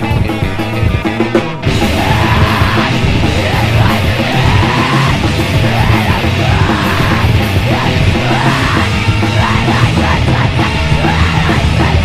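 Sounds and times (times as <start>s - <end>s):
heavy rock band playing: 0.0s - 12.0s
yelled vocals: 0.0s - 12.0s.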